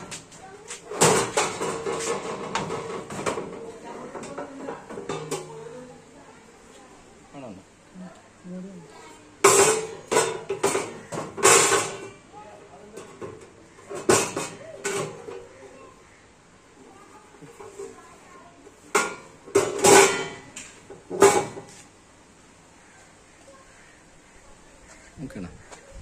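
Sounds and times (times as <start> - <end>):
sheet-metal box clanking and rattling: 0.9 - 3.6.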